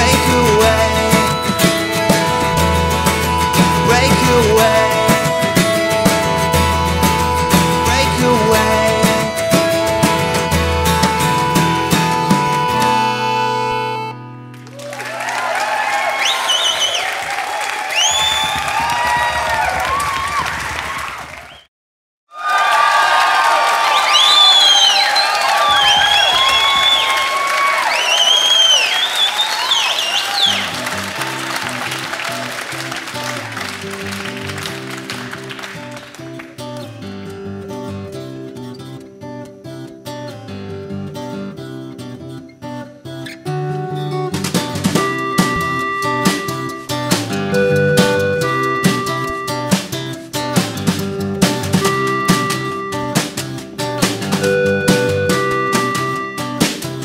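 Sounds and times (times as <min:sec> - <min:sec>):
acoustic guitar fingerpicking: 0:00.0 - 0:14.7, 0:30.6 - 0:57.0
audience applauding: 0:14.5 - 0:21.7, 0:22.4 - 0:36.8
high whistles: 0:16.1 - 0:17.2, 0:17.9 - 0:19.0, 0:21.4 - 0:21.7, 0:23.8 - 0:32.0, 0:54.4 - 0:56.8.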